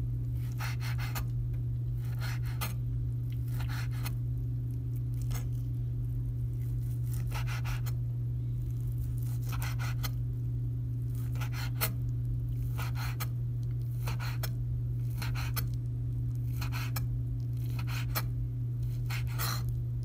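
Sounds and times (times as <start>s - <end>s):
low hum: 0.0s - 20.0s
knife slicing meat: 0.4s - 1.3s, 2.0s - 4.2s, 6.5s - 8.0s, 8.7s - 10.2s, 11.0s - 15.8s, 16.4s - 19.8s.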